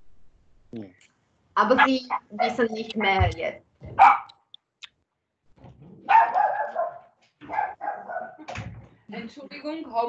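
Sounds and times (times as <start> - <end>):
dog barking: 4.0 - 4.4, 6.0 - 8.4.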